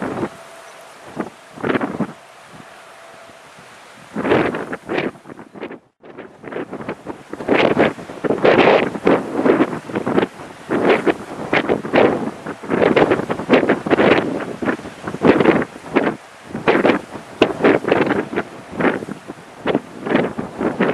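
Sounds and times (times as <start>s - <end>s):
wind buffeting microphone: 0.0s - 20.9s.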